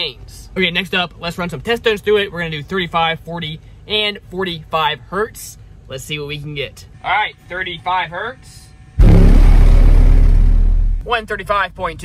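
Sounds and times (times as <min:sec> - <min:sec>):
deep subwoofer test tone: 0:09.0 - 0:11.1.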